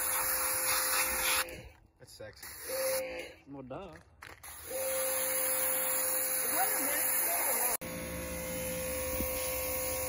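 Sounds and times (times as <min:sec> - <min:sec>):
pressure washer motor hum: 0:04.5 - 0:10.0.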